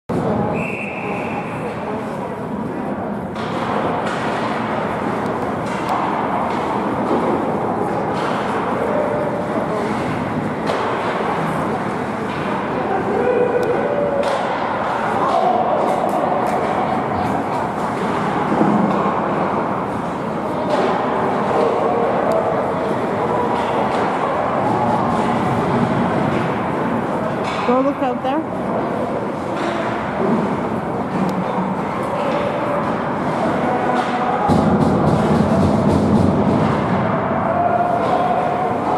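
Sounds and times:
crowd of spectators talking: 0.1s - 38.9s
hockey sticks and puck knocking: 3.3s - 27.8s, 28.6s - 38.9s.

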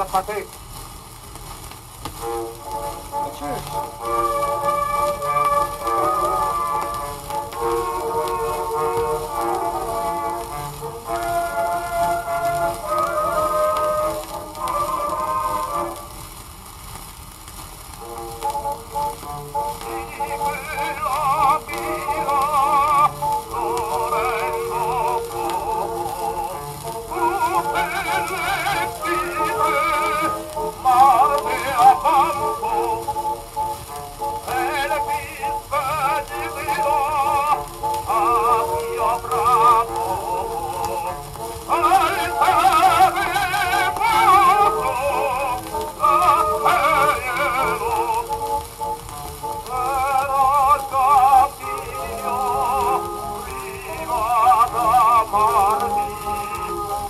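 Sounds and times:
disc surface hiss: 0.0s - 57.0s
operatic tenor singing: 2.2s - 16.1s, 18.0s - 57.0s.

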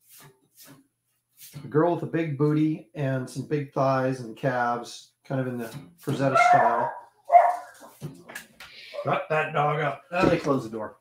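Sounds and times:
dog barking: 6.3s - 7.9s.

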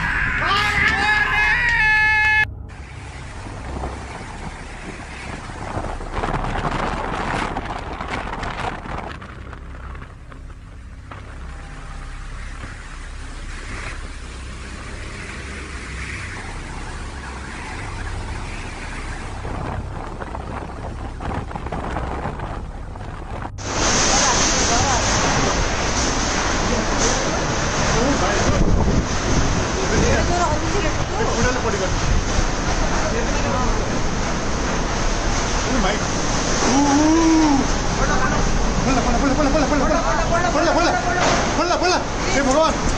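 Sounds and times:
wailing tone: 0.0s - 2.8s
rain: 0.0s - 42.9s
wind rushing with low rumble: 0.0s - 42.9s.

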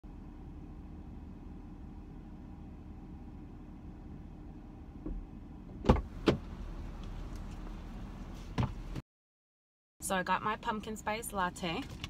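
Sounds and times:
car door clunks: 5.0s - 6.6s, 8.5s - 9.0s.

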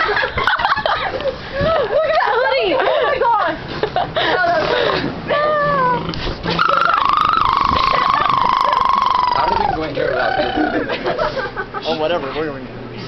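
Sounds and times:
person's long rough vocal sound: 5.4s - 10.8s.

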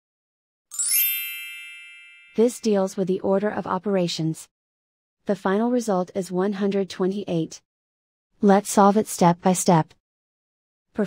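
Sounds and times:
bright chime: 0.7s - 2.8s.

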